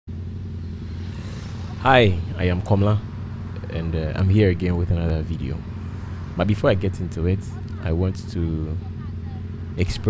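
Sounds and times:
motorcycle engine idling: 0:00.1 - 0:06.3, 0:07.0 - 0:10.0.

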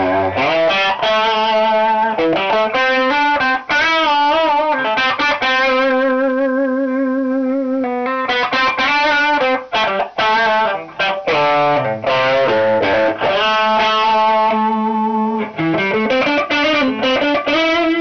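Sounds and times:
overdriven electric guitar lead: 0:00.0 - 0:18.0.

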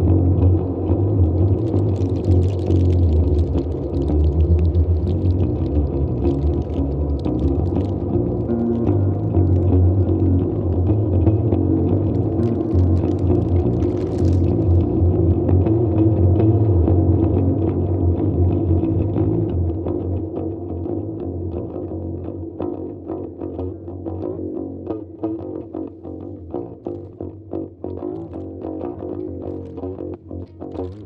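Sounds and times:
low electronic drone: 0:00.0 - 0:23.4
plucked guitar notes: 0:00.0 - 0:31.0.

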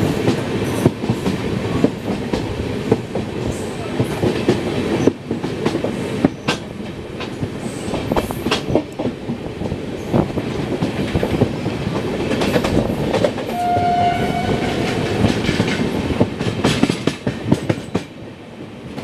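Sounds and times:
train rumbling: 0:00.0 - 0:19.0
wheels clacking over rail joints: 0:04.0 - 0:18.2
train horn: 0:13.5 - 0:15.2.

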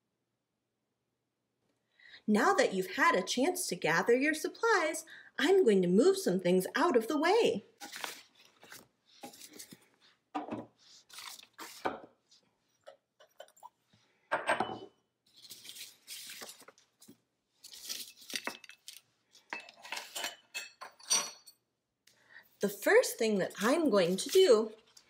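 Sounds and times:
paper rustling: 0:07.8 - 0:10.2, 0:10.8 - 0:11.9, 0:15.3 - 0:19.4, 0:23.6 - 0:25.0.

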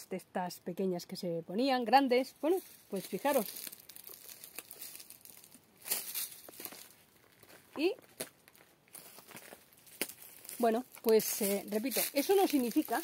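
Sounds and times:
leaves rustling: 0:01.6 - 0:13.0
footsteps on leaves and gravel: 0:02.2 - 0:13.0.

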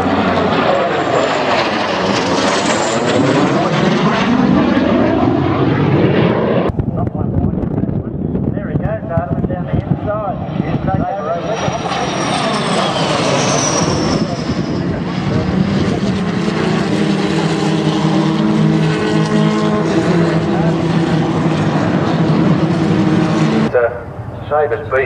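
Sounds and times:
jet aircraft flying past: 0:00.0 - 0:25.0.

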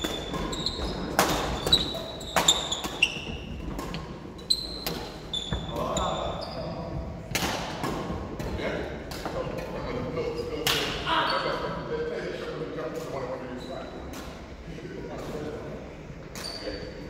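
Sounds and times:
rackets hitting shuttlecock: 0:00.0 - 0:05.2, 0:07.3 - 0:09.4
shoes thudding and squeaking on wood: 0:00.0 - 0:06.8.

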